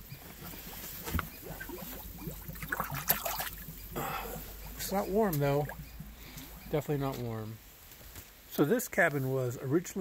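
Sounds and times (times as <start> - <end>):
water bubbling in spring pool: 0.0 - 6.8
bubbles popping with clicks: 1.4 - 3.8.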